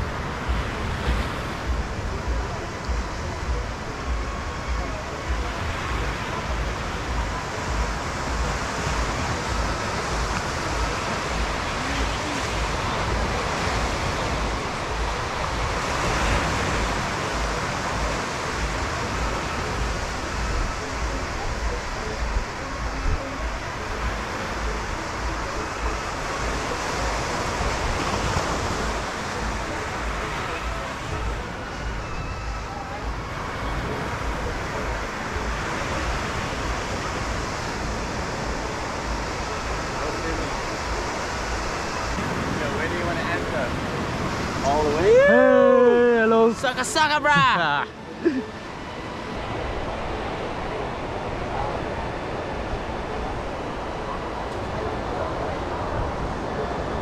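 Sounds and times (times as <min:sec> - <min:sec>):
waves washing onto beach: 0:00.0 - 0:57.0
wind buffeting microphone: 0:00.0 - 0:57.0.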